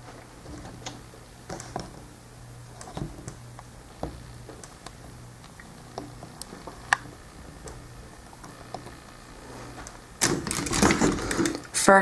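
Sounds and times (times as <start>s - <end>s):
rustling and knocking of handling: 9.6s - 11.7s.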